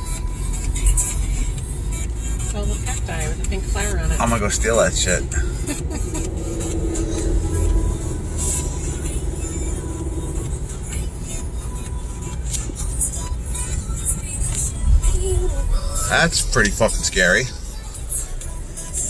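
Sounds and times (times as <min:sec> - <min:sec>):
car cabin rumble: 0:00.0 - 0:19.0
music playing: 0:00.0 - 0:19.0.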